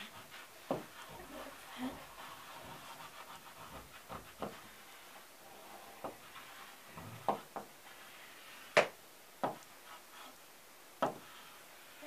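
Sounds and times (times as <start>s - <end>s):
chalk scraping on a chalkboard: 0.0s - 8.8s, 9.5s - 10.4s, 11.0s - 12.0s.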